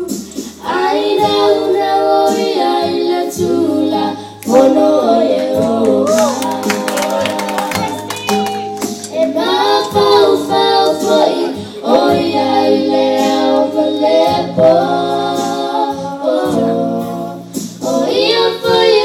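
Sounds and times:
girls singing together: 0.0 - 19.0.

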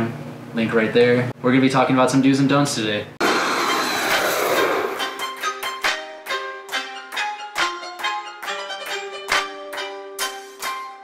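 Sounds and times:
jet airliner flyby: 3.2 - 5.2.

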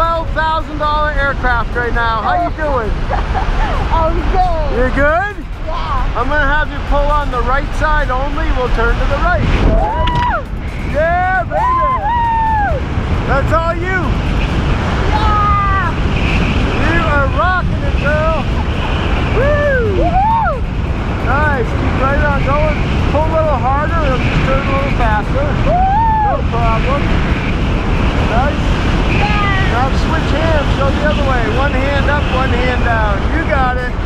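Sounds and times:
wind rushing over microphone: 0.0 - 34.0.

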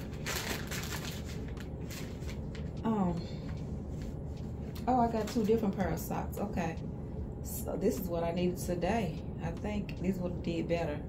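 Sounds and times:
package tearing and crinkling: 0.0 - 2.5.

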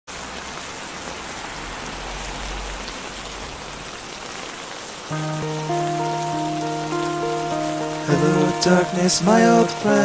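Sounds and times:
steady rain falling: 0.1 - 10.0.

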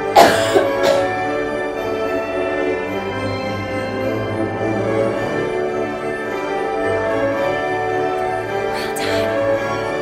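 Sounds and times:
orchestral background music: 0.0 - 10.0
person coughing loudly: 0.1 - 1.2.

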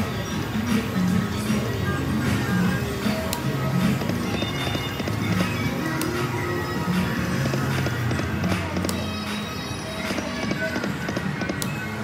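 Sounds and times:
electronic slot machine music: 0.0 - 12.0.

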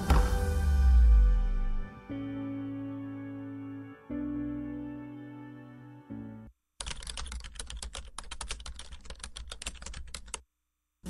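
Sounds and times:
keyboard typing: 6.8 - 10.4.

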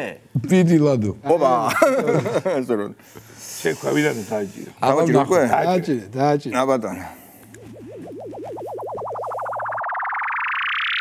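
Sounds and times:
man talking: 3.6 - 7.2.

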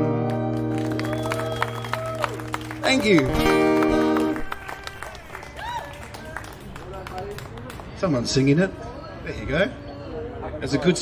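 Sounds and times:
faint distant voices: 5.0 - 11.0.

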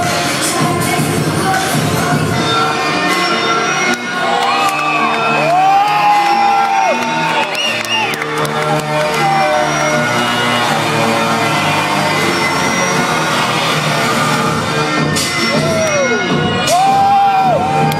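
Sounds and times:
loud live electronic music: 0.0 - 17.9
audience whooping and cheering: 3.9 - 14.3, 15.2 - 17.9.

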